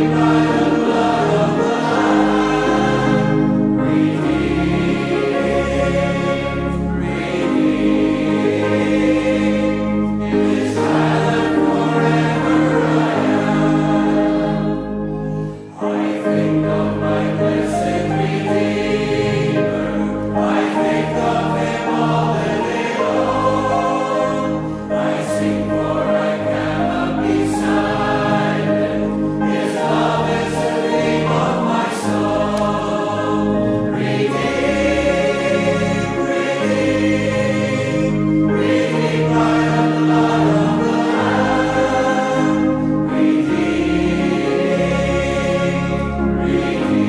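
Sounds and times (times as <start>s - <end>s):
congregation singing a hymn: 0.0s - 47.0s
organ chords: 0.0s - 47.0s.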